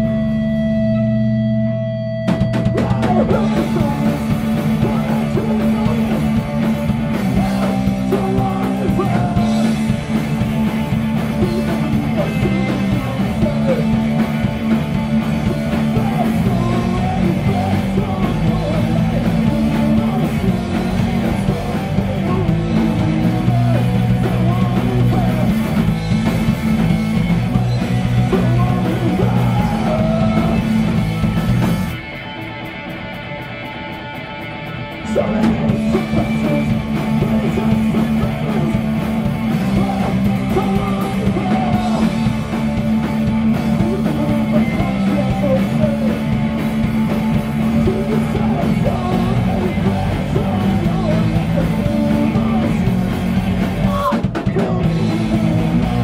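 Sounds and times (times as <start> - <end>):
distorted electric guitars: 0.0 - 56.0
drum kit: 0.0 - 56.0
vocals: 2.5 - 32.3, 34.6 - 56.0.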